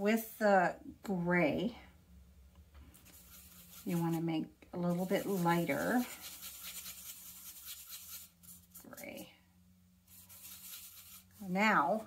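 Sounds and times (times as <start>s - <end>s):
paintbrush stirring paint: 2.9s - 9.3s, 10.1s - 12.0s.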